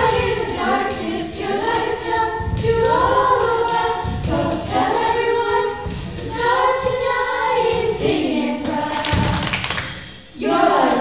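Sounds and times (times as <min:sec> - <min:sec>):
young voices singing in unison: 0:00.0 - 0:11.0.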